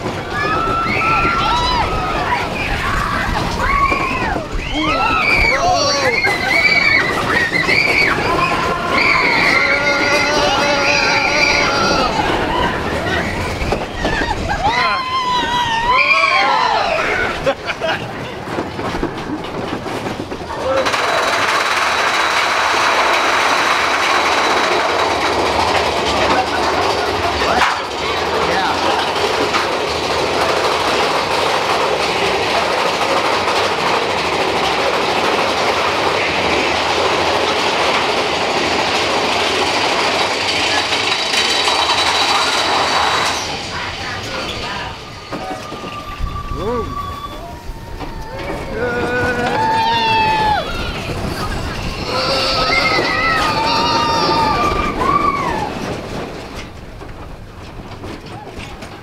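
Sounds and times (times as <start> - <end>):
roller coaster wheels rattling: 0.0 - 59.0.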